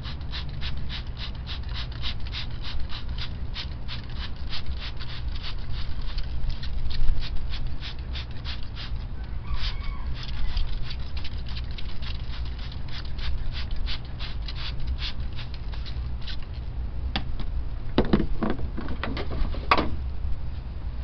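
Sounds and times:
steady low rumble: 0.0s - 9.5s, 10.1s - 21.0s
toothbrush scrubbing plastic: 10.2s - 16.5s.

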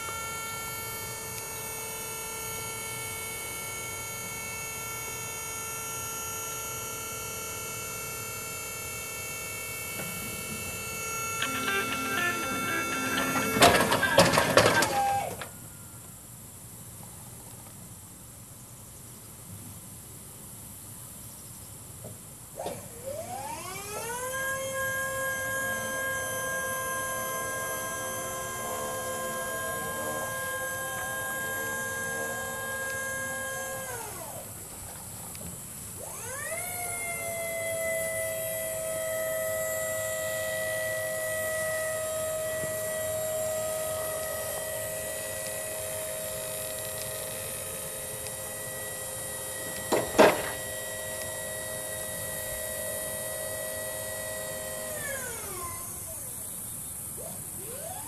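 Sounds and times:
hydraulic pump motor whining: 0.0s - 15.5s, 22.6s - 56.3s, 57.2s - 58.0s.

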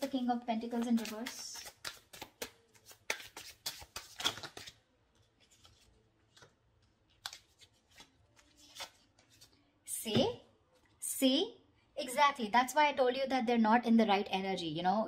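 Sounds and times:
cards being shuffled: 0.1s - 9.6s.

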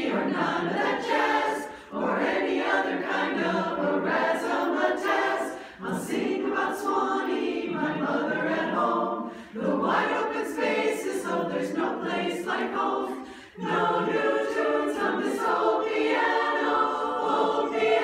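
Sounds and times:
women's chorus singing in harmony: 0.0s - 18.0s.

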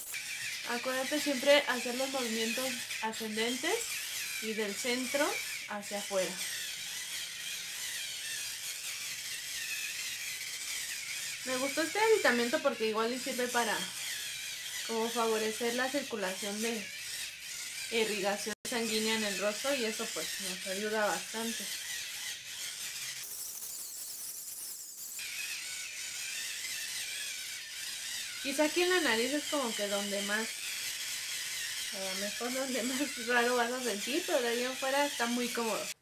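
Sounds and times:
facial brush motor whir: 0.0s - 36.0s.

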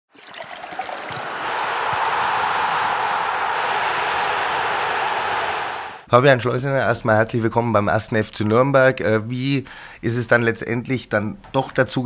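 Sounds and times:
liquid pouring into glass: 0.1s - 3.9s
ice cubes clinking into glass: 0.2s - 2.2s.

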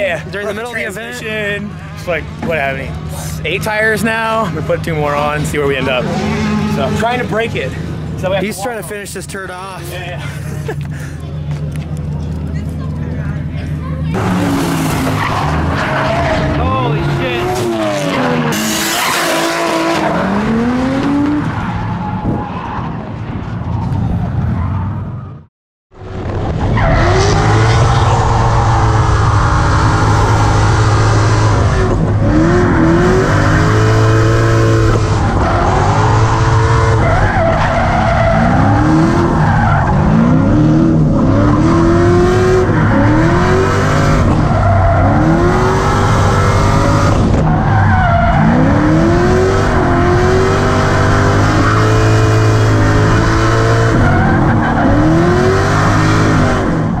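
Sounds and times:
car engine revving hard: 4.5s - 7.9s, 14.1s - 21.5s, 26.2s - 57.0s.

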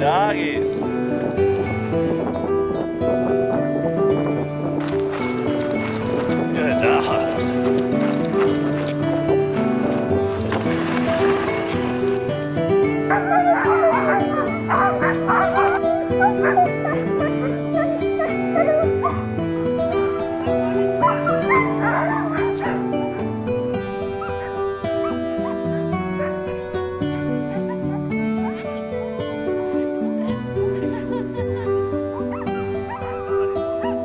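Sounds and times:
background music: 0.0s - 34.0s
sled dogs yipping and whining: 12.8s - 34.0s.

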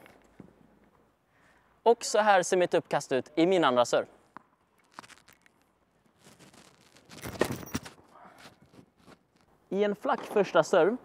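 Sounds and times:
shoes scuffing on hard court: 6.3s - 9.4s.

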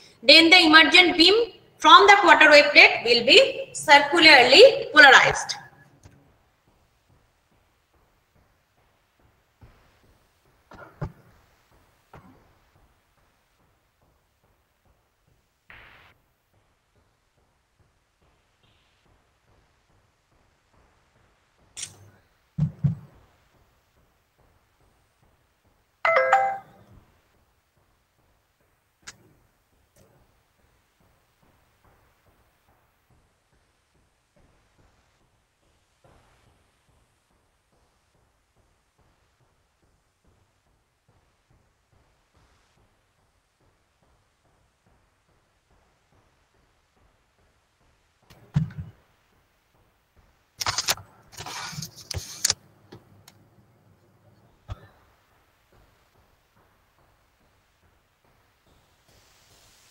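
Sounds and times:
sharp clicks: 21.8s - 22.1s, 50.6s - 53.4s
two-note electronic chime: 26.1s - 26.8s.

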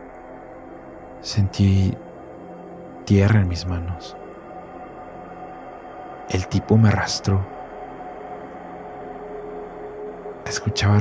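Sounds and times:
dark ambient drone: 0.0s - 11.0s.

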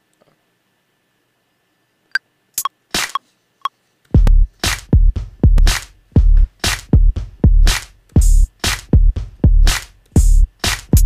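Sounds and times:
electronic drum loop: 4.2s - 11.0s
percussion sample hits: 4.2s - 11.0s.

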